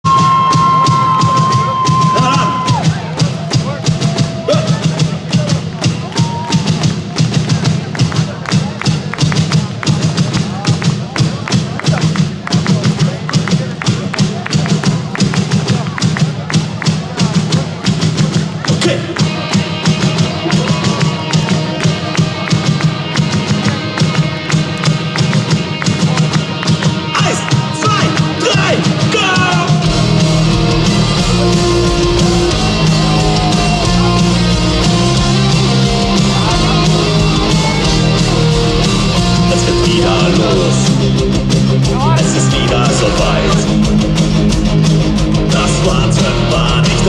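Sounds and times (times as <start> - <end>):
rock band playing live: 0.0 - 47.0.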